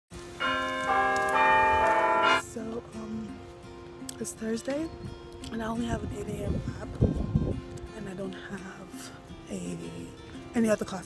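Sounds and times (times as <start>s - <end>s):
bell-like chime notes: 0.4s - 2.4s.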